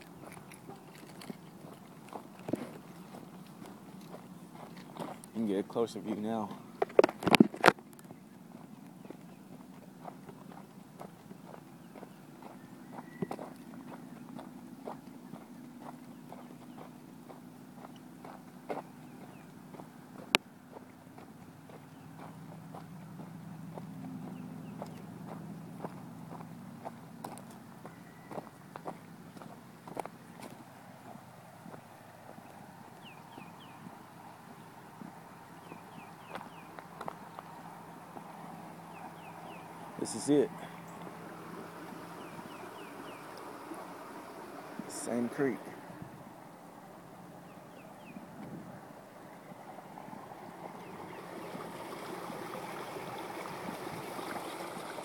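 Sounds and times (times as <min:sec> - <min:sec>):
footsteps crunching on gravel: 0:00.0 - 0:32.6, 0:35.0 - 0:45.7.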